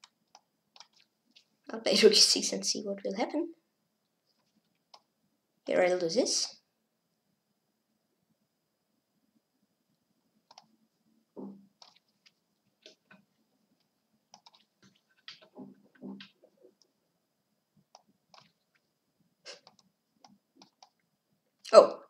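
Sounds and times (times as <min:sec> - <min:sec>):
computer mouse clicking: 0:00.0 - 0:01.1, 0:04.4 - 0:05.1, 0:10.4 - 0:10.8, 0:11.8 - 0:13.2, 0:14.3 - 0:15.5, 0:17.9 - 0:18.8, 0:19.5 - 0:21.0.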